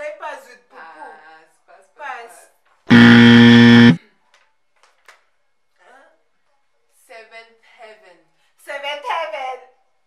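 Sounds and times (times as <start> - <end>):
game show buzzer: 2.9 - 4.0.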